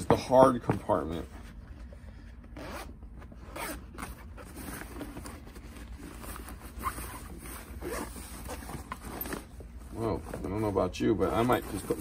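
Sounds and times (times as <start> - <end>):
bag zipper being pulled open: 3.5 - 4.0, 6.7 - 8.2.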